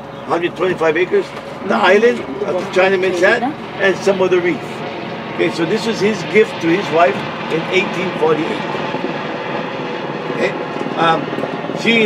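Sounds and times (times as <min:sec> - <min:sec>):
rushing background noise: 0:00.0 - 0:12.0
man speaking: 0:00.3 - 0:04.8, 0:05.4 - 0:08.6, 0:10.4 - 0:12.0.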